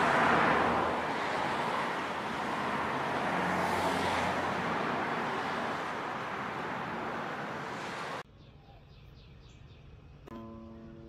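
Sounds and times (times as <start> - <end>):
road traffic rush: 0.0 - 8.8.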